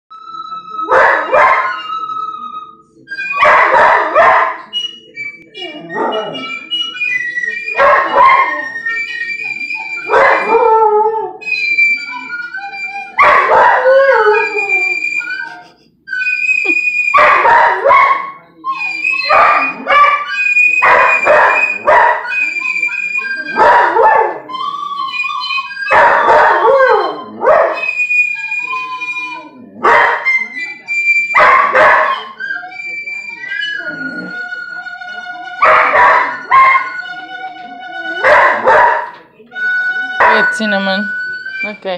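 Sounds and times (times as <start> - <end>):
flute held notes: 0.1 - 3.8, 4.4 - 41.9
dog howling: 33.6 - 34.5.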